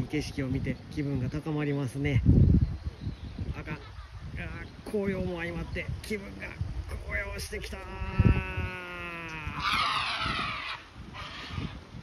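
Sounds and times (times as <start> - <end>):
man yelling: 7.0 - 9.9.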